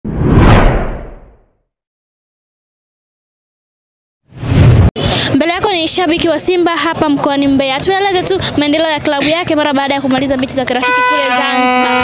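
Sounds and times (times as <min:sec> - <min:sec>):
whoosh with deep low rumble: 0:00.0 - 0:01.4.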